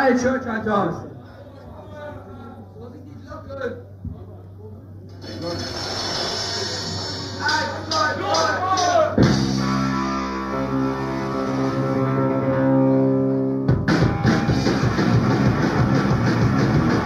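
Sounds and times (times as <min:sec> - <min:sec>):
fast punk rock song: 0:09.2 - 0:12.0, 0:13.7 - 0:17.0
electric guitar chord ringing: 0:09.2 - 0:17.0.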